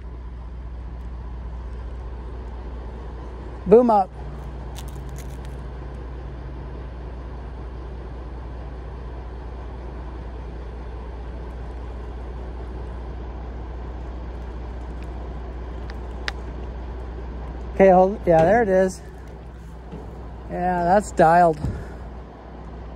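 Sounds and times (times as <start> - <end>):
crane engine humming: 0.0 - 22.9.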